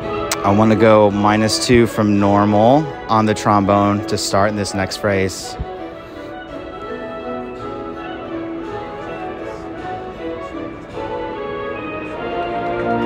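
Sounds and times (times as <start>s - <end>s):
marching band playing held chords: 6.6s - 13.0s.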